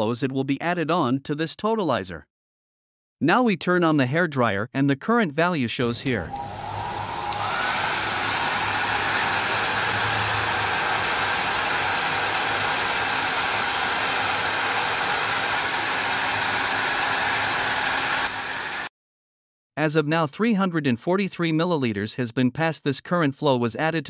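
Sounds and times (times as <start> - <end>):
hair dryer running: 6.1 - 18.9.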